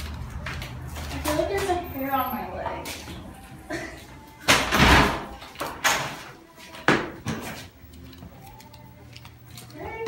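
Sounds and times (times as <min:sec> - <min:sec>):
door thud: 0:04.5 - 0:05.3.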